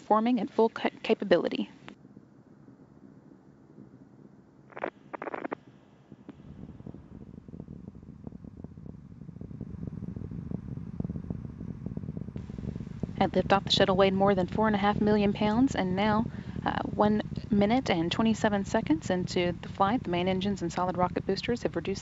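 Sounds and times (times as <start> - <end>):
rocket exhaust rumble and crackling: 0.1 - 22.0.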